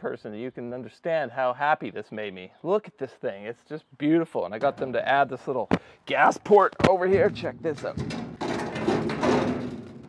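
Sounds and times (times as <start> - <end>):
metal box scraping on concrete: 7.2 - 10.0.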